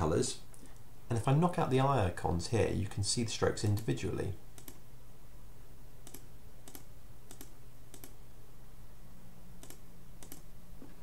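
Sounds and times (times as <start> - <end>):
low steady hum: 0.0 - 11.0
computer mouse clicks: 4.6 - 4.8, 6.0 - 8.2, 9.6 - 10.9.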